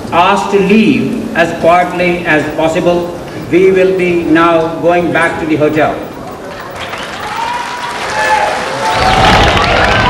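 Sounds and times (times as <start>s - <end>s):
crowd voices: 2.5s - 10.0s
audience applauding: 6.4s - 10.0s.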